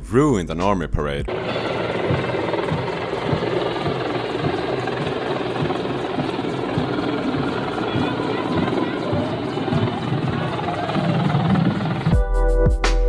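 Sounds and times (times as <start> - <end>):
helicopter rotor and turbine: 1.3 - 12.2.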